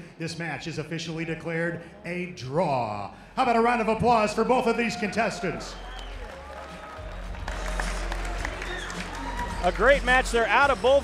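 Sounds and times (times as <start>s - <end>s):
crowd applauding: 5.0s - 11.0s.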